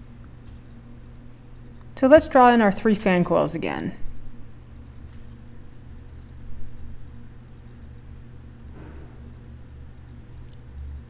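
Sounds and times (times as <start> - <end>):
low electrical hum: 0.0 - 11.0.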